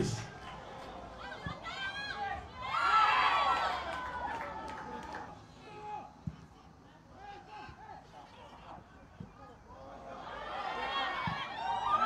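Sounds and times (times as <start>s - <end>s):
crowd shouting: 0.0s - 6.2s, 9.7s - 12.0s.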